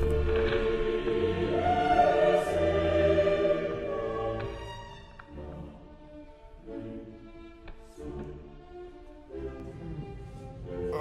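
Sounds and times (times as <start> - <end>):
dramatic choral music: 0.0 - 11.0.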